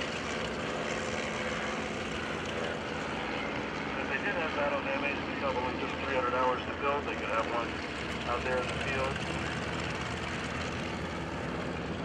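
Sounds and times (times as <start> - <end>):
propeller airplane flying past: 0.0 - 12.0.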